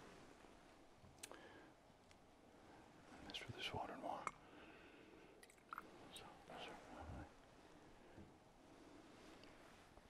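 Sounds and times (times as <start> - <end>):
man whispering prayer: 3.2 - 4.4, 6.0 - 7.4.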